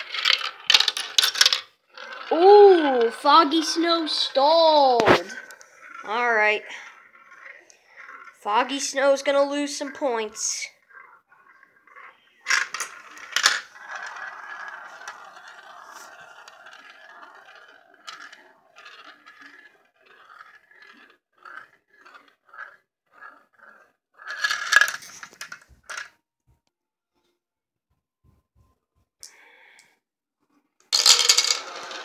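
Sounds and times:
marbles clacking: 0.0 - 26.2, 30.9 - 32.0
marbles clattering: 0.0 - 26.2, 30.9 - 32.0
marbles rolling in plastic bowls: 0.0 - 26.2, 30.8 - 32.0.

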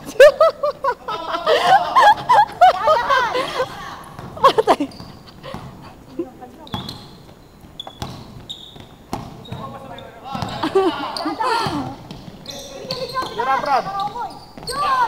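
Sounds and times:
players' voices: 0.1 - 6.9, 9.3 - 15.0
sneaker squeaks: 2.2 - 15.0
basketball bouncing: 3.6 - 10.8, 11.4 - 15.0.

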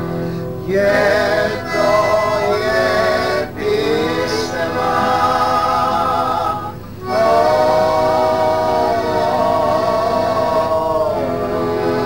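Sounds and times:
group of people singing: 0.6 - 12.0.

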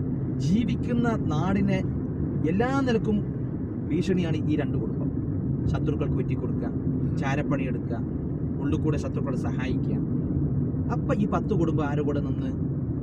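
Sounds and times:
car engine and road noise: 0.0 - 13.0
person talking: 0.4 - 1.8, 2.4 - 3.2.

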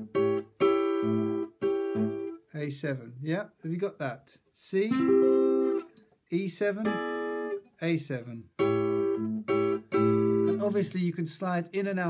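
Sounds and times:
acoustic guitar chord strums: 0.0 - 2.8, 4.7 - 11.0.

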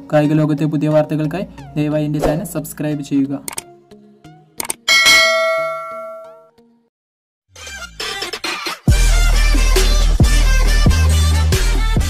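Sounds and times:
quick clicks: 3.5 - 3.7, 4.6 - 4.8
bright bell ding: 4.9 - 6.5.

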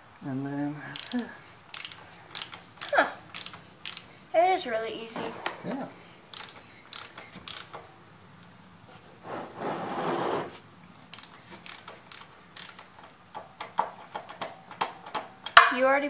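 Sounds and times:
ratchet wrench clicking: 0.9 - 4.2, 6.3 - 7.8, 11.1 - 13.8.

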